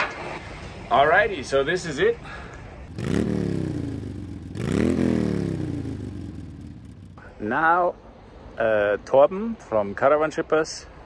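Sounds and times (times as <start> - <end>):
vehicle engine revving: 2.9 - 7.2.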